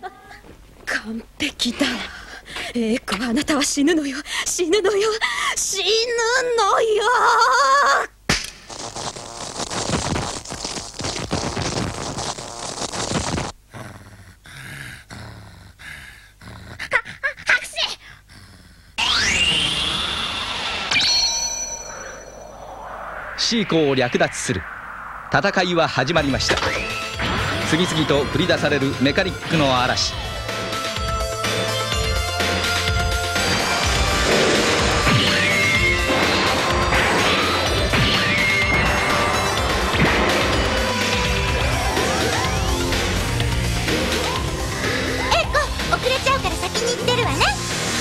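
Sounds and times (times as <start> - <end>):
growly snoring: 13.7 - 16.9
falling whistling sweep: 19.0 - 28.0
action soundtrack music: 26.2 - 48.0.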